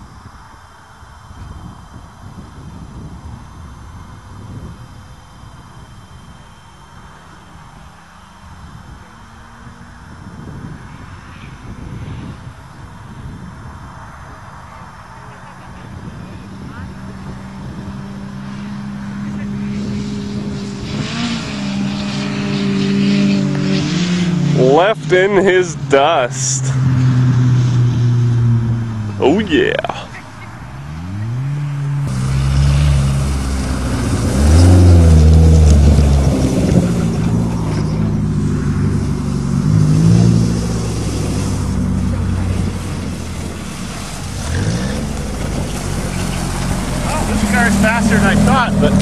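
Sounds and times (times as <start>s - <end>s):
racing car engines: 0.0s - 49.0s.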